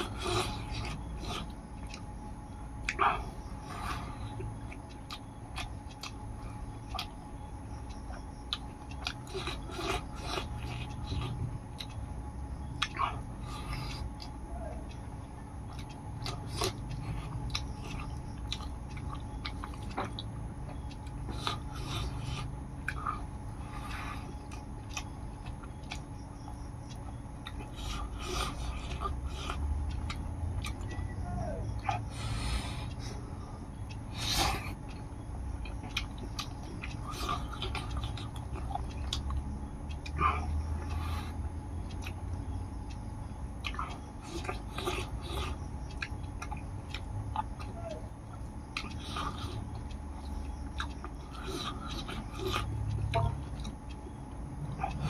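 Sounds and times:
chewing and mouth sounds: 0.0 - 55.0.

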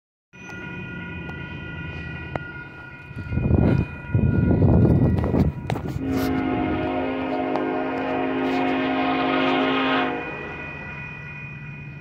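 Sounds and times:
low train rumble: 0.4 - 12.0
distant train horn: 5.8 - 10.9.

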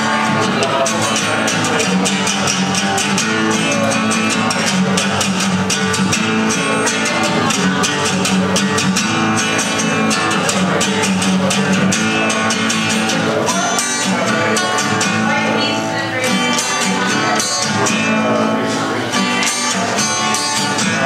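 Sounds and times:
strummed acoustic-electric guitar: 0.0 - 21.0.

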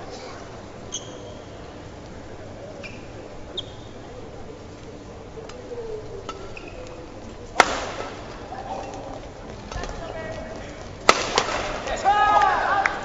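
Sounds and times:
shoe squeaks on court floor: 0.9 - 1.5
racket hitting shuttlecock: 7.6 - 8.2, 11.0 - 12.0.

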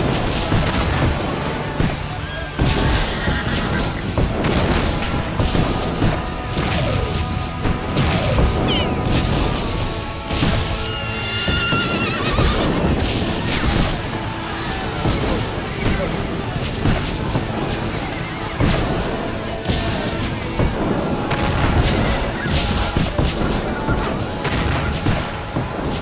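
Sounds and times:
battle crashes and bangs: 0.0 - 26.0
music: 0.0 - 26.0
horse whinnying: 2.8 - 4.0, 8.7 - 9.0, 10.8 - 12.9.

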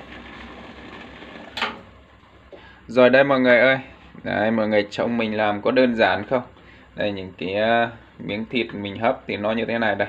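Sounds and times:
cooking stove running: 0.0 - 10.0.

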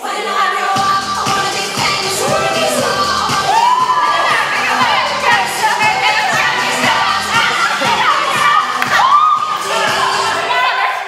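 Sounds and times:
young women shrieking and whooping: 2.2 - 5.0, 7.3 - 11.0.

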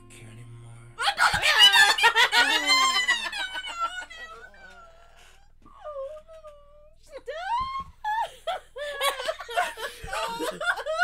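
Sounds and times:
women shrieking and laughing: 1.0 - 4.8, 7.4 - 11.0.

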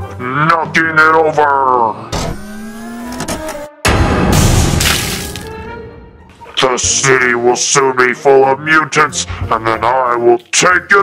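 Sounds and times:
music with rising tone: 2.0 - 6.5
loud crash sound effect: 3.8 - 5.5.

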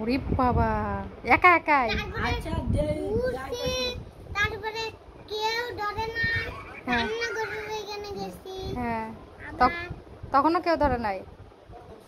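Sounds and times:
young boy singing: 2.0 - 8.8.

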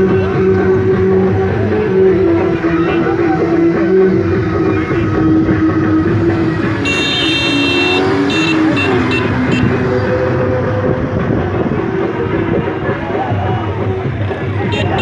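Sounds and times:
traffic rumble: 0.0 - 15.0
car horns tooting: 6.6 - 10.0, 14.6 - 15.0.

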